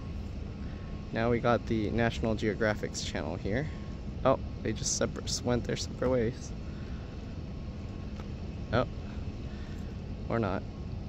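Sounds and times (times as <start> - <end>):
faint hum: 0.0 - 11.0
low background rumble: 0.0 - 11.0.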